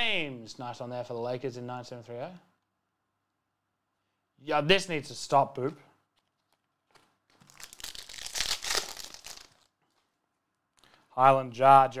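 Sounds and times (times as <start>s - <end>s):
foil wrapper crinkling: 6.2s - 10.2s.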